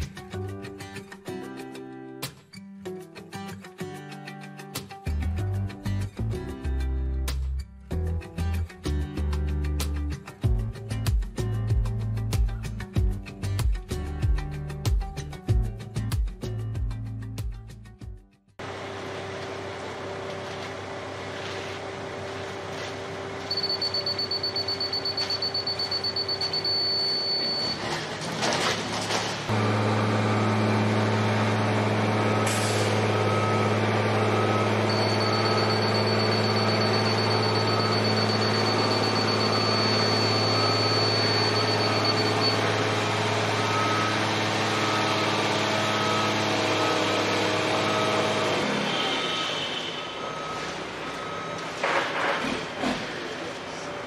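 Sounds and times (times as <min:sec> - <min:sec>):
heavy vehicle engine running: 0:18.6 - 0:54.0
reversing alarm beeping: 0:23.5 - 0:27.9, 0:32.1 - 0:51.9
high thin beeping tone: 0:34.8 - 0:42.7.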